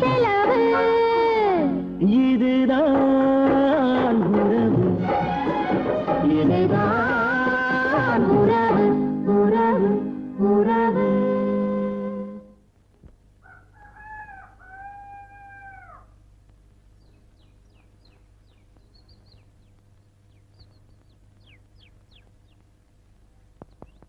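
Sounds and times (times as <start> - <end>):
music: 0.0 - 12.6
rooster crowing: 13.4 - 16.2
small birds chirping: 16.5 - 24.0.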